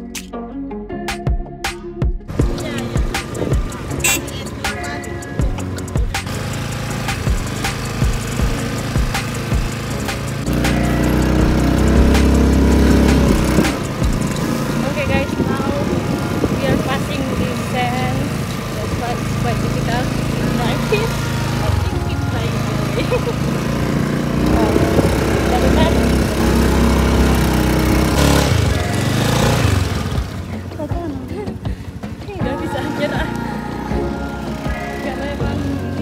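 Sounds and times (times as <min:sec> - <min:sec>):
bumps and rattles: 0:02.2 - 0:33.3
motorbike engine: 0:02.3 - 0:36.0
wind noise on microphone: 0:02.4 - 0:05.6, 0:11.5 - 0:23.6, 0:24.2 - 0:29.0
voices: 0:02.4 - 0:36.0.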